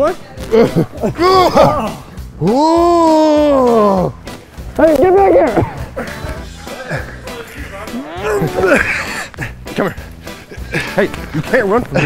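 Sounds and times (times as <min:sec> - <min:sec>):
background music: 0:00.0 - 0:12.0
man's drawn-out vocal cry: 0:01.2 - 0:04.1, 0:07.9 - 0:09.2.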